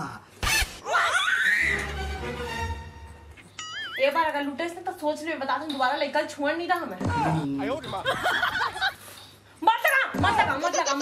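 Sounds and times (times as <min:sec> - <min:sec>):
background music: 0:01.4 - 0:03.8
laughter: 0:08.0 - 0:09.0.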